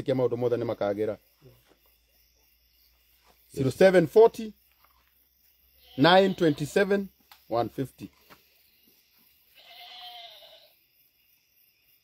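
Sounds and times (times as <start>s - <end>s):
faint animal call: 9.5s - 10.8s.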